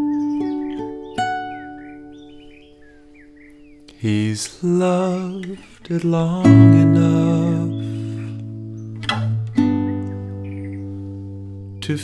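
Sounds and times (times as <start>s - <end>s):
acoustic guitar strums: 0.0s - 12.0s.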